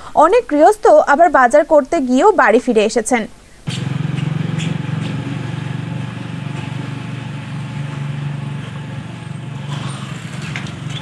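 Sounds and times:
vehicle engine drone and road noise: 3.7 - 11.0.

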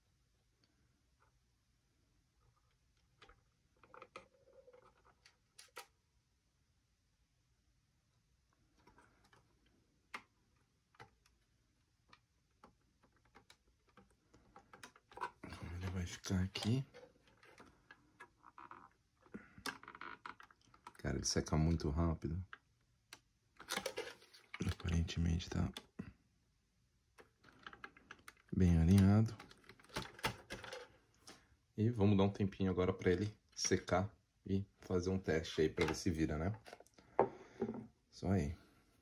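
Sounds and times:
plastic parts clicking and tapping: 8.8 - 21.0, 22.4 - 26.0, 27.1 - 31.4, 35.7 - 37.9.

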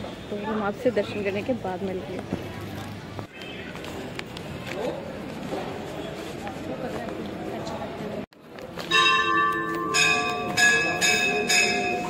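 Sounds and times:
temple bells ringing: 8.8 - 12.0.

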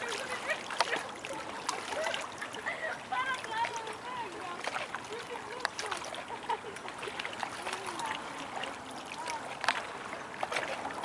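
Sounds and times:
river water rushing: 0.0 - 11.0.

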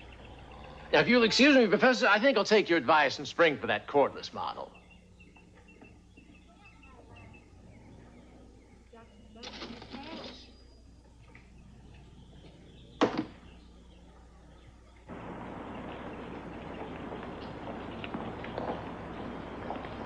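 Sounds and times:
street traffic noise: 15.1 - 20.0.

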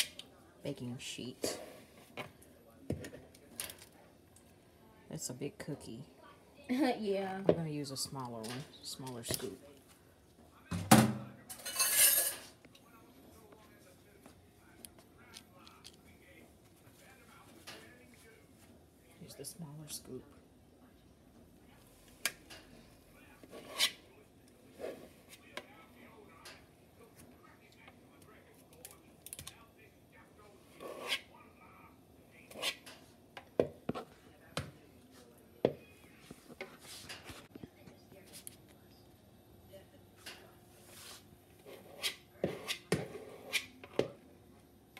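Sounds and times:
metal utensils clattering: 11.5 - 12.5.

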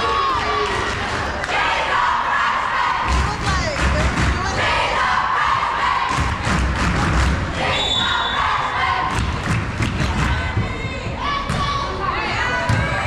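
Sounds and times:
crowd and players calling out: 0.0 - 13.0.

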